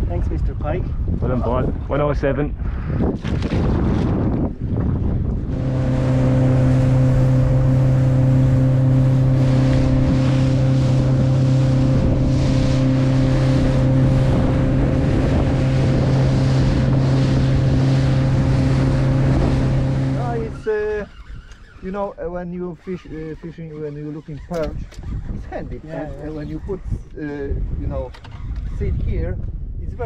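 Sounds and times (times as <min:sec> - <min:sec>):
wind and water rushing: 0:00.0 - 0:23.3
outboard motor droning: 0:05.1 - 0:28.9.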